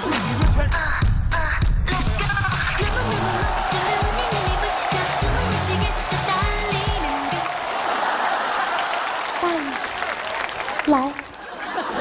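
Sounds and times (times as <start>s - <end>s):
upbeat music with bass beat: 0.0s - 7.6s
audience applause: 2.8s - 12.0s.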